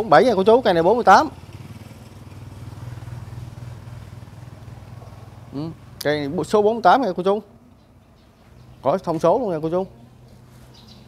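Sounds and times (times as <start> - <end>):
small engine idling: 0.0 - 6.4.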